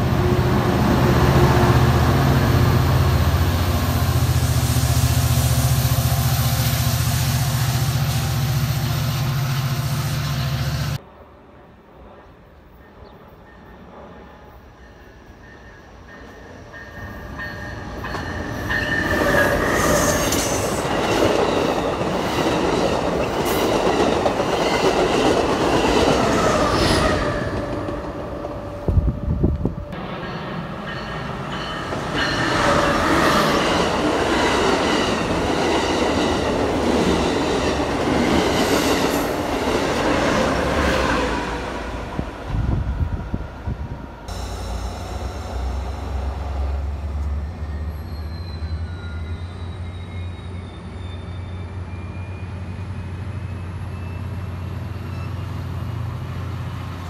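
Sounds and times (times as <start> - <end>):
trains passing at speed: 0.0 - 57.0.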